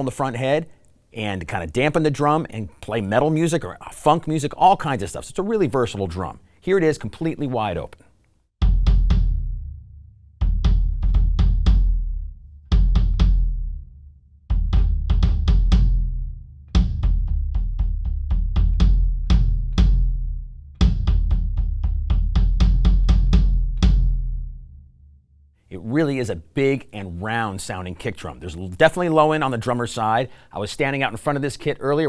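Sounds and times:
kick drum booming: 8.6s - 24.8s.

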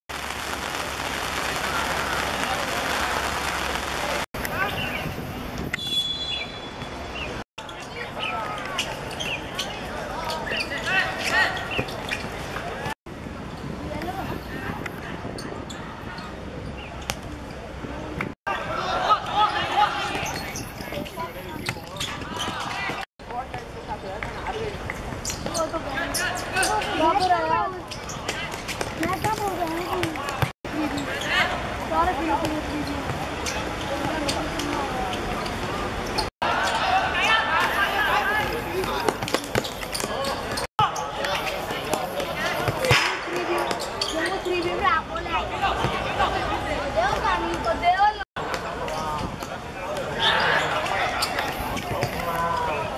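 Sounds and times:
onlookers chatting: 0.7s - 5.4s, 7.6s - 52.9s
people shouting calls: 18.5s - 20.4s, 36.4s - 39.2s
players shouting: 18.5s - 21.0s, 35.7s - 48.8s
ball kicked and bouncing: 28.3s - 30.5s, 38.8s - 40.9s
football kicked and bouncing: 28.7s - 30.5s.

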